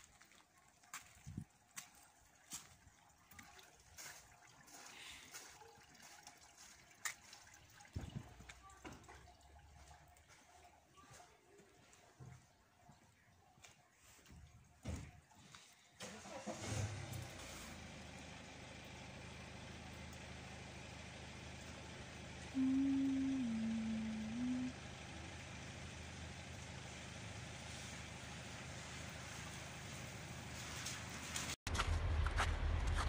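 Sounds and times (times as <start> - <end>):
vehicle engine running: 16.0 - 33.0
loud steady tone: 22.6 - 24.8.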